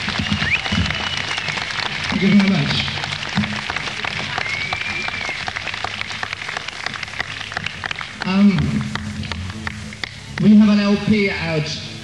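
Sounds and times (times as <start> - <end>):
audience clapping: 0.0 - 10.9
high whistle: 0.2 - 1.7, 4.4 - 5.5
low steady hum: 2.0 - 12.0.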